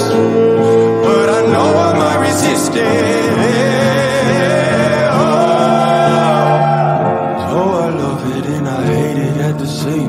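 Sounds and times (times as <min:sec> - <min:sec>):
man singing pop song: 0:00.0 - 0:10.0.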